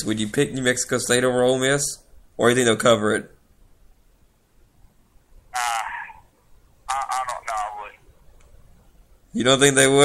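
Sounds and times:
man speaking hesitantly: 0:05.6 - 0:06.3, 0:06.9 - 0:08.0.

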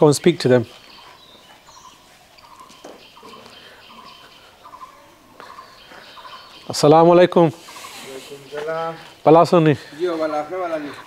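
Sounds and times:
faint bird chirps: 0:00.0 - 0:09.2.

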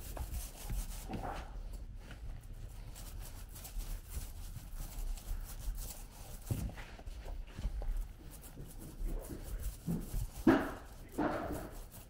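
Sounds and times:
paint roller rubbing on rough floor: 0:00.0 - 0:12.0.

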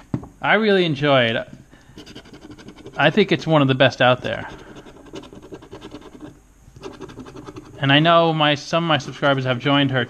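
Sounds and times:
scraping scratch-off ticket: 0:02.0 - 0:03.5, 0:04.1 - 0:08.0, 0:08.9 - 0:10.0.

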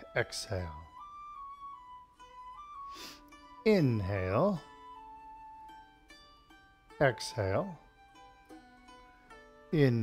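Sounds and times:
slow melody of held notes: 0:00.0 - 0:10.0.

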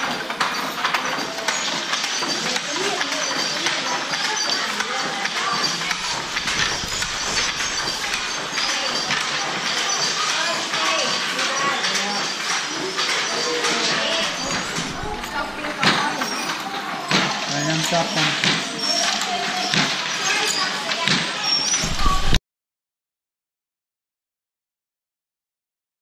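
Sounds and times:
indistinct chatter of voices: 0:00.0 - 0:22.4
wooden knocks of looms: 0:00.0 - 0:22.4.

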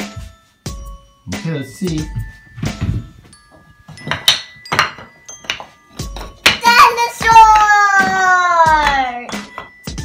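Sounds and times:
toy blocks clacking: 0:04.0 - 0:10.0.

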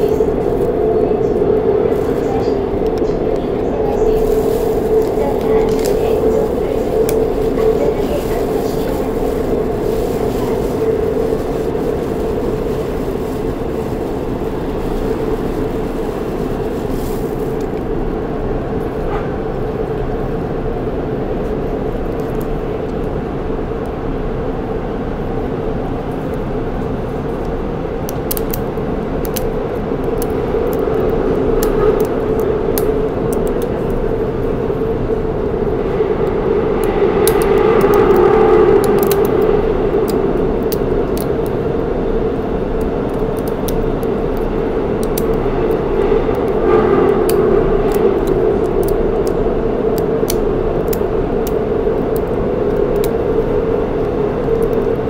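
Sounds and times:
subway train rumble and hum: 0:00.0 - 0:55.0.

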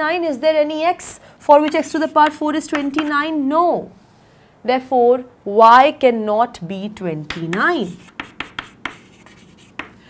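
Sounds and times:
chalk tapping on chalkboard: 0:01.6 - 0:03.2, 0:07.3 - 0:10.0
chalk strokes on chalkboard: 0:01.8 - 0:02.3, 0:07.8 - 0:10.0.

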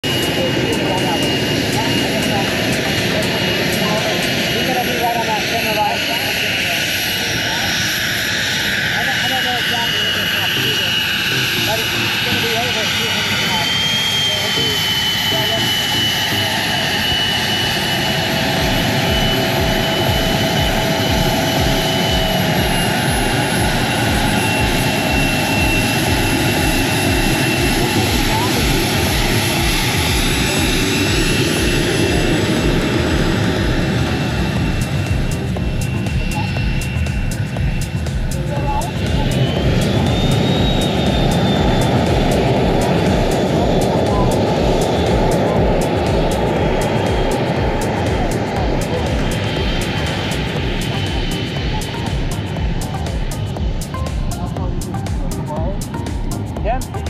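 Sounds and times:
jet engine high whine: 0:00.0 - 0:57.0
jet noise rush: 0:00.0 - 0:57.0.

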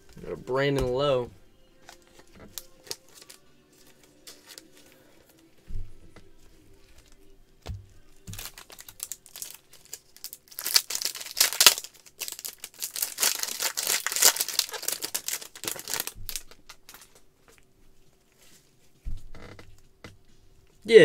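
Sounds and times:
foil wrapper crinkling: 0:01.8 - 0:05.1, 0:08.2 - 0:17.3.

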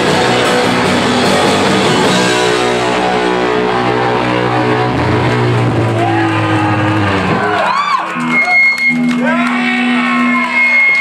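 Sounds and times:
live rock song: 0:00.0 - 0:11.0
crowd whooping and shouting: 0:02.2 - 0:11.0.

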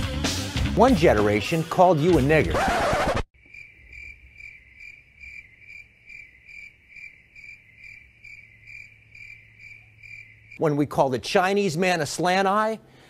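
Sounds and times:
crickets chirping: 0:03.4 - 0:10.6.

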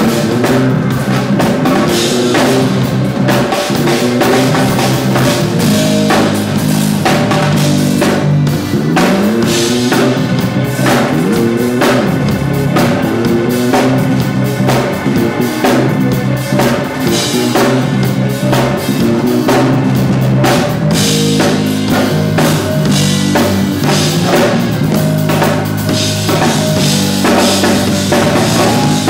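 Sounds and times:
bass guitar: 0:00.0 - 0:29.0
drum kit groove: 0:00.0 - 0:29.0
organ notes: 0:00.0 - 0:29.0.

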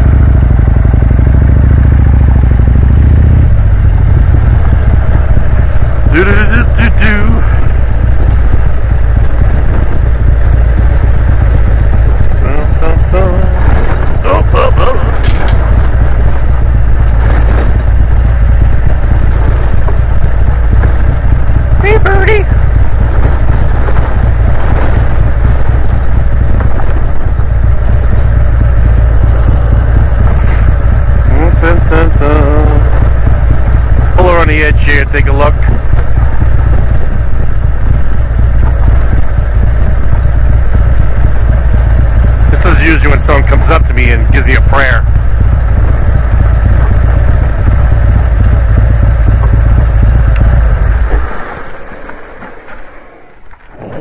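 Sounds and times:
motorcycle road rumble: 0:00.0 - 0:54.0
person speaking: 0:06.1 - 0:07.6, 0:12.4 - 0:15.5, 0:21.8 - 0:22.6, 0:31.3 - 0:32.9.

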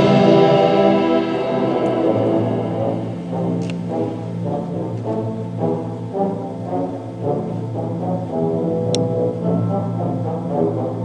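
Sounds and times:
concert band playing: 0:00.0 - 0:05.0
low tuba notes: 0:00.0 - 0:11.0.

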